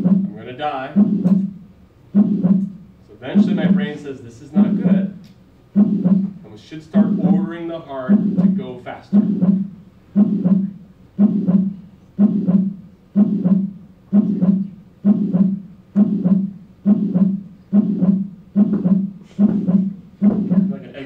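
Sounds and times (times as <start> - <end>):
heartbeat lub-dub: 0.0 - 4.0, 4.6 - 6.4, 7.0 - 21.0.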